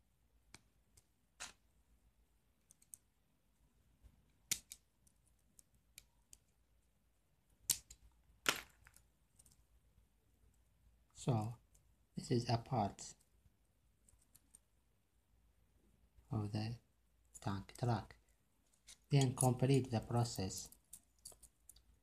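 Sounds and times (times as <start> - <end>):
metallic clicks of hinges and screw: 20.6 - 21.9.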